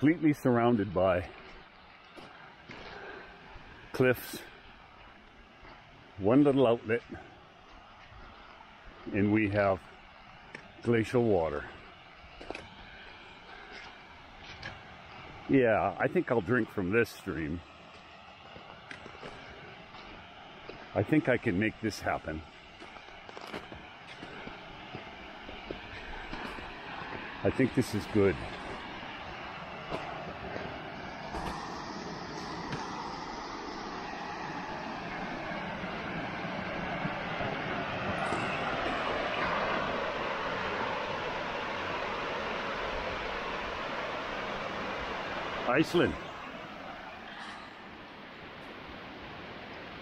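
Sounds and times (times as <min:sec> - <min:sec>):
stream rushing: 0:00.0 - 0:50.0
stream rushing over rocks: 0:34.5 - 0:50.0.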